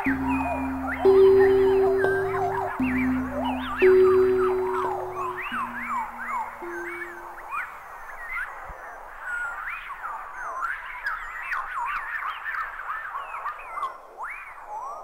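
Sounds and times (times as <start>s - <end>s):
hip-hop beat: 0.0s - 7.3s
chirping calls: 0.0s - 8.3s.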